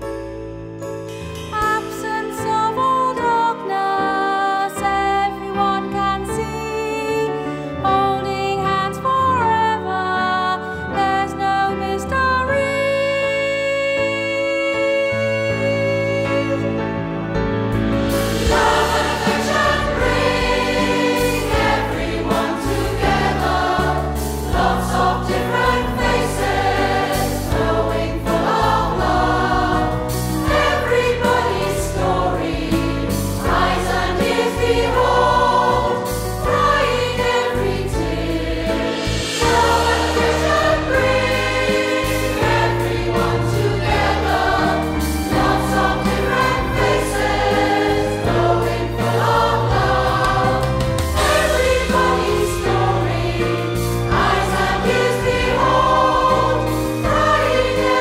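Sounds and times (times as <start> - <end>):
mixed choir singing: 18.1 - 58.0.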